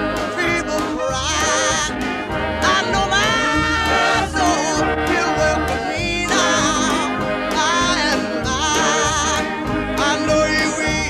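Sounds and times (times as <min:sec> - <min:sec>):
instrumental accompaniment: 0:00.0 - 0:11.0
person singing gospel: 0:00.0 - 0:11.0.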